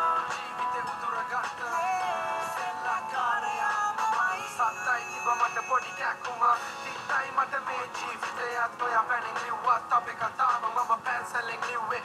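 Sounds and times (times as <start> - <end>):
pop song with vocals: 0.0 - 12.0.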